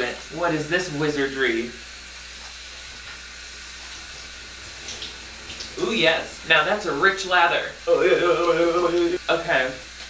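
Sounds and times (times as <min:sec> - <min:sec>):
shower water spray: 0:00.0 - 0:10.0.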